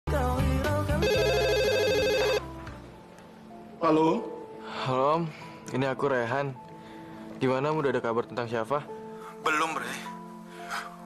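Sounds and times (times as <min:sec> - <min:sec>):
telephone ringing: 0:01.0 - 0:02.5.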